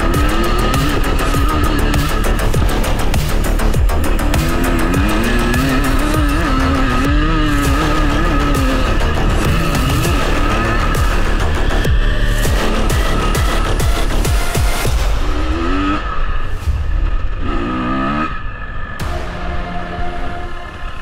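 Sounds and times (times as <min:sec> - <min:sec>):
motorcycle engine revving hard: 0:00.0 - 0:16.4, 0:17.1 - 0:21.0
background music: 0:00.0 - 0:21.0.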